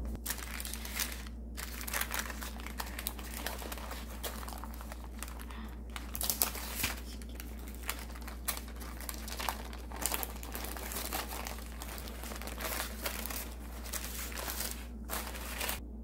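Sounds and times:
baking paper crinkling: 0.0 - 15.8.

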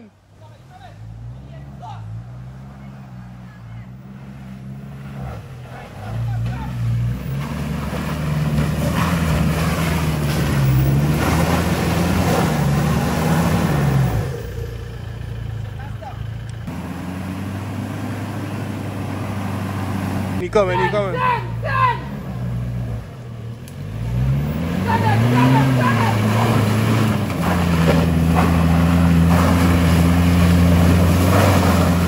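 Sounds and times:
truck engine working hard: 0.0 - 32.0
tyres churning mud: 0.6 - 32.0.

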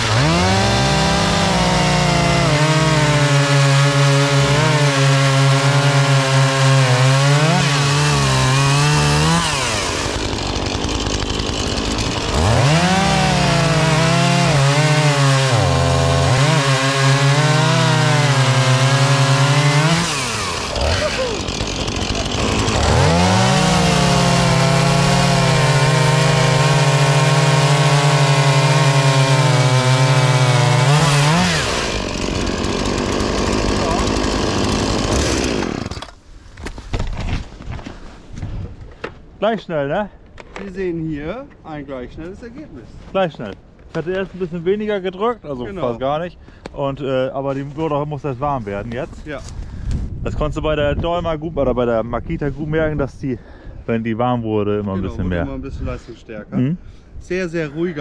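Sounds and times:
chainsaws idling: 0.0 - 36.2
chainsaws cutting logs: 0.0 - 37.2.

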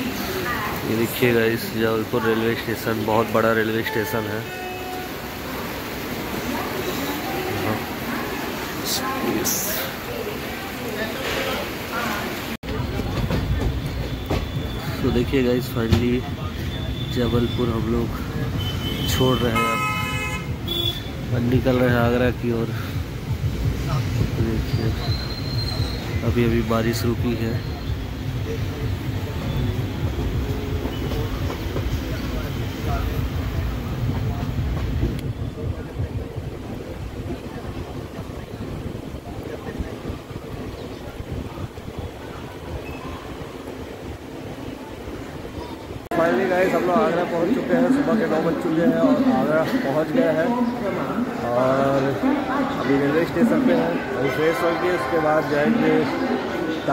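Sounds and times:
train wheels rumbling on track: 4.9 - 48.4.

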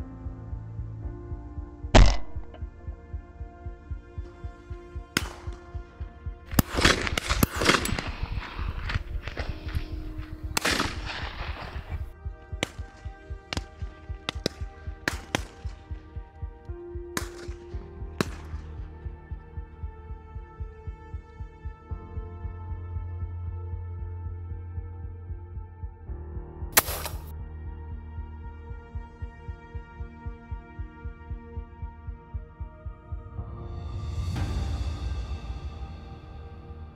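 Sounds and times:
background music with sustained chords: 0.0 - 36.9
slow pulsing beat: 0.0 - 36.9
shotgun shots: 2.0 - 2.6, 5.2 - 5.7, 6.5 - 16.0, 17.2 - 18.6, 26.8 - 27.3.

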